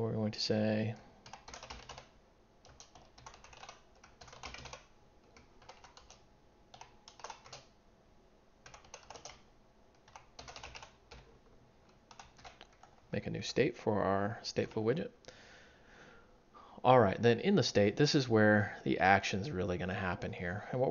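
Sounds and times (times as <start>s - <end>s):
faint keyboard typing: 0.8s - 7.8s, 8.6s - 13.1s.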